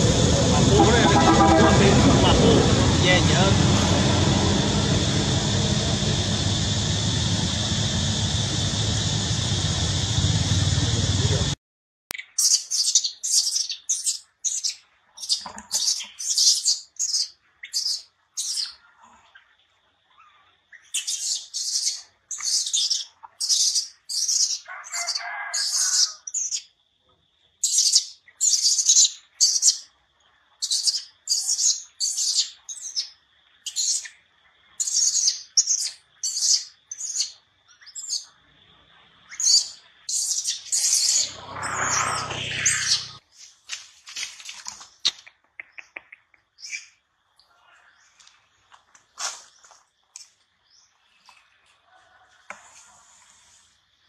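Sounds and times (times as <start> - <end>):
faint steady high whine: 0.0 - 11.6
louder deeper sound: 0.0 - 11.6
high-pitched chirping calls: 12.2 - 18.8, 20.7 - 26.7, 27.6 - 29.9, 30.6 - 34.2, 34.8 - 38.3, 39.3 - 43.2, 45.0 - 47.0.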